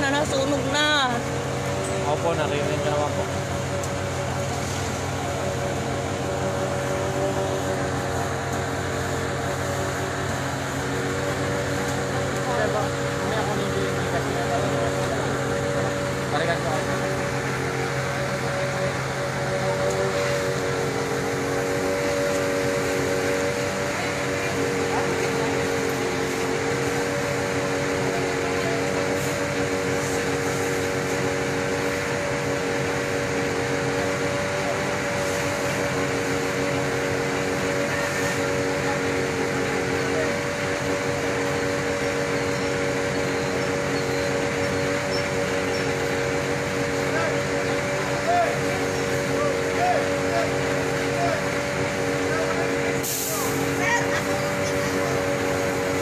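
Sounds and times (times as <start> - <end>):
fire truck engine droning: 0.0 - 56.0.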